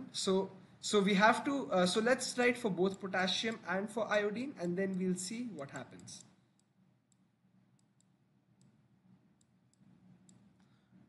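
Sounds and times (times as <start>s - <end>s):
stylus clicks: 2.9s - 3.7s, 4.6s - 8.8s.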